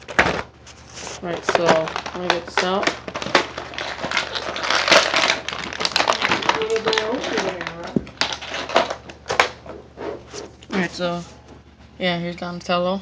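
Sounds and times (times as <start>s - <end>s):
plastic packaging crinkling: 0.0s - 10.9s.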